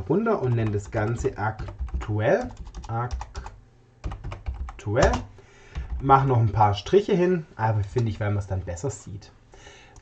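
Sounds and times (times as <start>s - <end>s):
computer keyboard typing: 0.0s - 6.1s.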